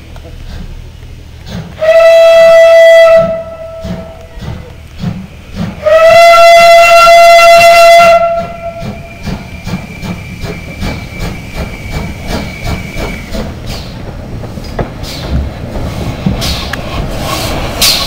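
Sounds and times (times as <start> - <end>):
steam locomotive beat: 0.2 - 18.0
steam whistle blast: 1.8 - 4.2, 5.8 - 13.3.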